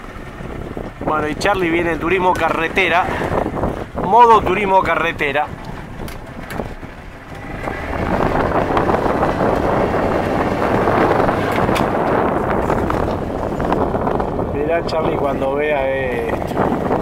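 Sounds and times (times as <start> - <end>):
motorboat engine running: 0.0 - 17.0
water rushing past boat: 0.0 - 17.0
wind buffeting microphone: 0.0 - 17.0.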